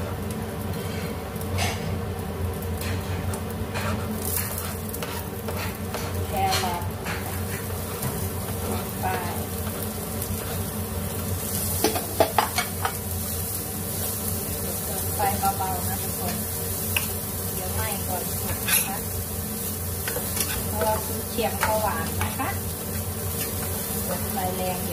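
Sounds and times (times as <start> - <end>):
food sizzling in hot oil: 0.0 - 24.9
spatula scraping frying pan: 2.8 - 13.0, 15.3 - 24.2
spatula knocking on pan: 11.8 - 13.0.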